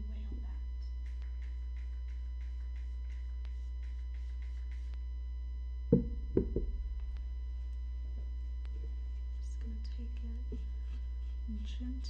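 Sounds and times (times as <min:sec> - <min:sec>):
low electrical hum: 0:00.0 - 0:12.0
objects knocking on table: 0:05.9 - 0:06.8.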